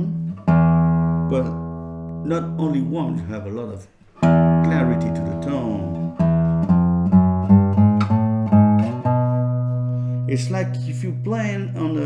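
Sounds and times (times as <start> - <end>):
classical guitar plucked bass notes: 0.0 - 12.0.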